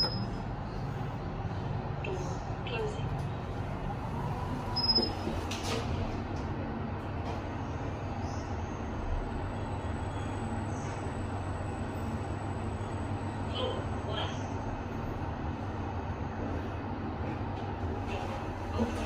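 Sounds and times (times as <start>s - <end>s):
lift hum and rumble: 0.0s - 19.0s.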